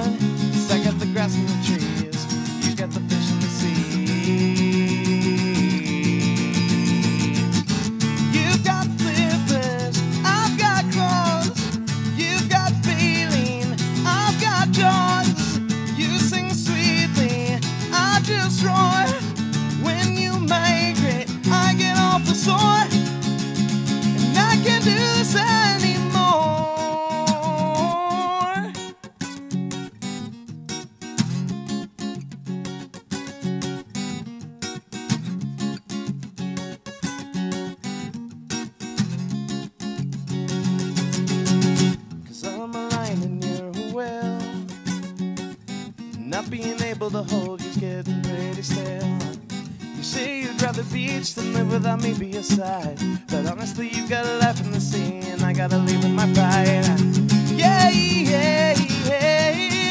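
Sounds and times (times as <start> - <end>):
man singing: 0.0 - 29.1, 42.3 - 44.9, 46.2 - 59.9
strummed acoustic guitar: 0.0 - 59.9.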